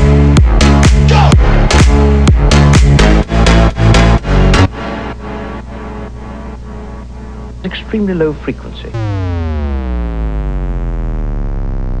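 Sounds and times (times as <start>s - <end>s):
deep bass: 0.0s - 12.0s
synthesizer note gliding down: 4.7s - 12.0s.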